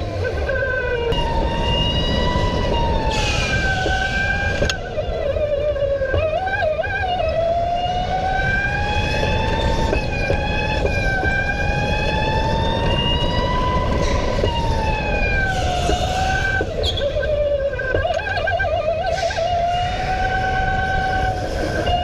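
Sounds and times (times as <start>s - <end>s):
electric go-kart motor whining: 0.0s - 22.0s.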